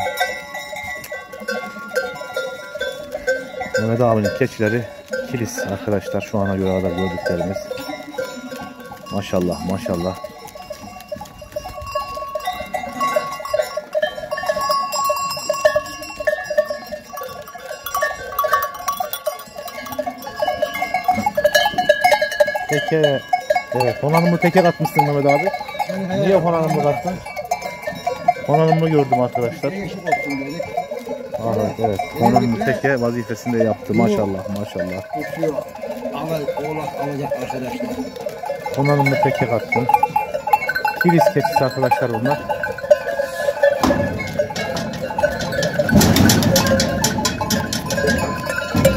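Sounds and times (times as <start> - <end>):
goat bells clanking: 0.0 - 48.9.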